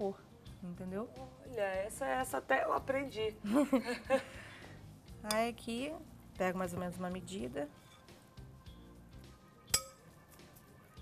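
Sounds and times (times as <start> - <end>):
metal spoon clinking glass bowl: 5.2 - 5.5, 7.7 - 8.2, 9.7 - 10.2.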